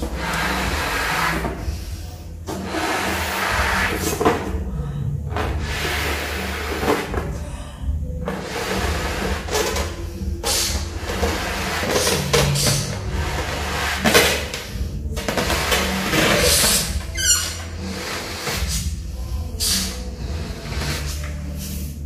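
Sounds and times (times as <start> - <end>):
balloon squeak: 8.3 - 19.0, 19.6 - 22.0
breath puffs into balloon: 10.4 - 14.0.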